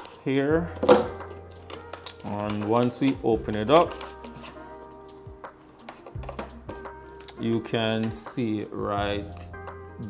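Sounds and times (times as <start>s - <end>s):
soft background music: 0.0s - 10.0s.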